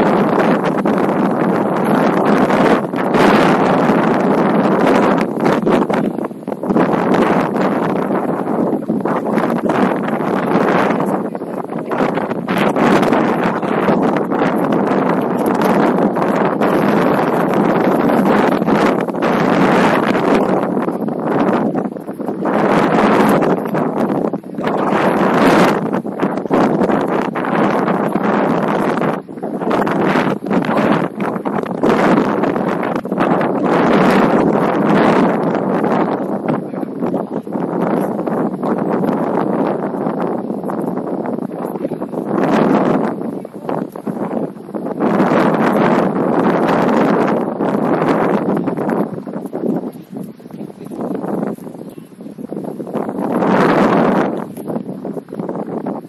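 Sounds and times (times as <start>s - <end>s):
wind on microphone: 0.0s - 56.0s.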